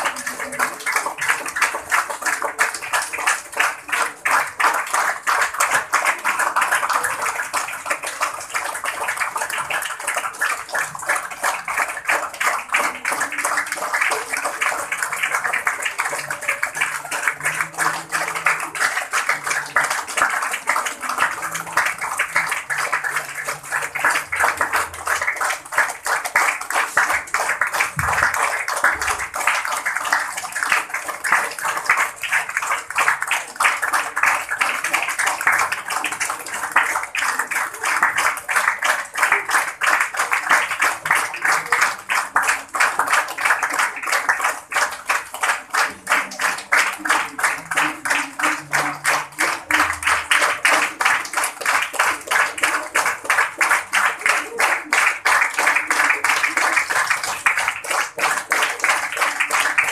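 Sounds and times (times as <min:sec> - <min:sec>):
crowd applauding: 0:00.0 - 0:59.9.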